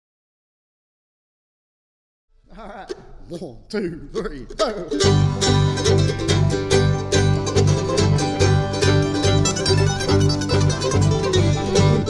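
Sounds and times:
bluegrass band playing: 4.4s - 12.0s.

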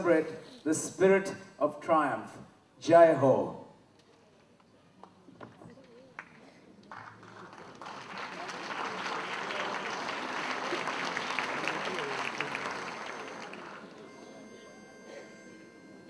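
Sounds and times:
audience applause: 5.9s - 14.2s.

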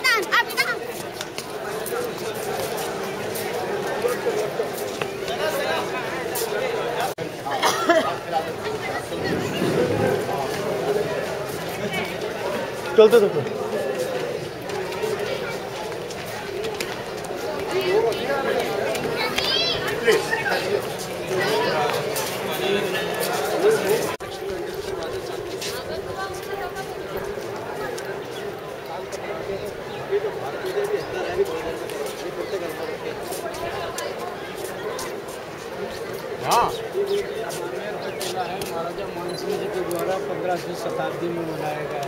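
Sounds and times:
people talking: 0.0s - 42.0s.

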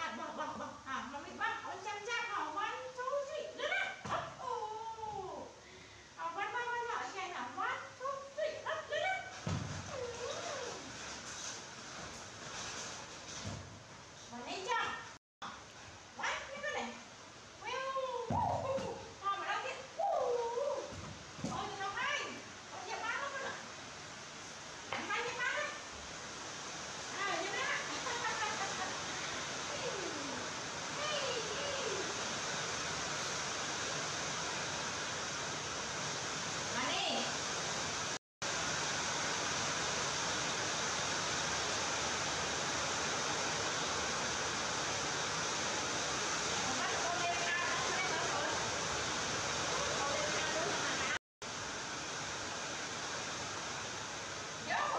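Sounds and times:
steady hiss: 0.0s - 54.9s.

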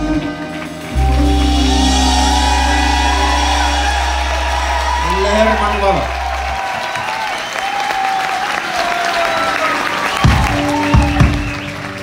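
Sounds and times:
rock band chord ringing: 0.5s - 7.3s
loud low bass note: 0.8s - 7.0s.

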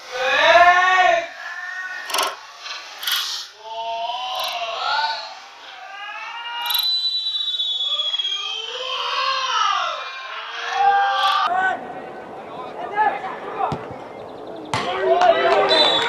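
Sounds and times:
players shouting: 0.0s - 2.5s, 7.8s - 16.0s
long falling whistle: 6.2s - 9.1s, 15.7s - 16.0s
ball being struck: 13.7s - 14.1s, 14.7s - 15.7s.

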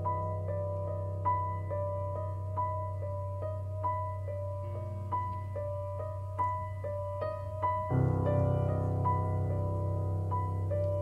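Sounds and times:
slow keyboard notes: 0.0s - 11.0s.

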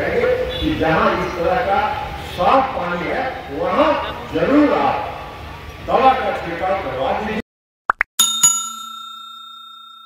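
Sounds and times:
bell ding: 8.2s - 10.0s.

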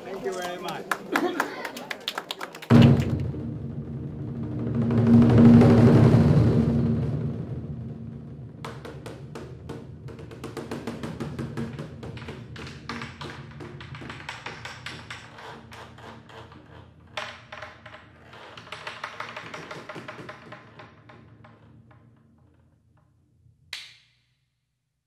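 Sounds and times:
rapid ticking percussion: 4.2s - 17.5s.

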